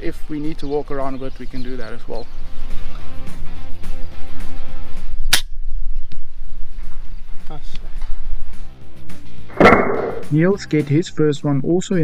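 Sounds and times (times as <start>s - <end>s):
air rifle shot: 9.5s - 10.4s.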